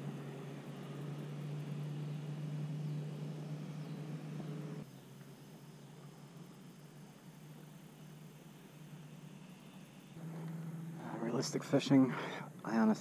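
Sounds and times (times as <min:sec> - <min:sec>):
faint background hiss: 0:00.0 - 0:13.0
low engine-like hum: 0:00.0 - 0:13.0.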